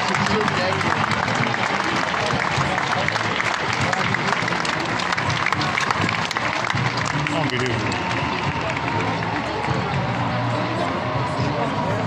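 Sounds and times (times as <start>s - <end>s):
crowd applauding: 0.0s - 12.0s.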